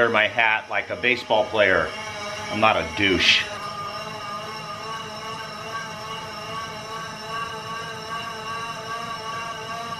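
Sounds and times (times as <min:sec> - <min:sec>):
bicycle rollers whining: 0:00.0 - 0:09.9.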